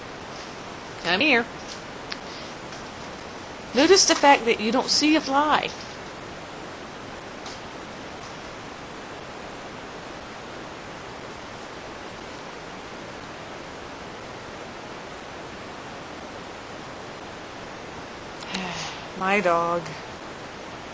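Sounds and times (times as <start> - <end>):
steady background hiss: 0.0 - 20.9.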